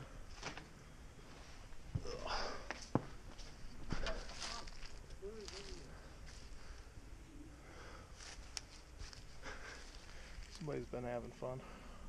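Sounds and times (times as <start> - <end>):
footsteps through dry grass: 3.2 - 7.0, 8.1 - 10.8
faint humming voice: 3.9 - 8.4.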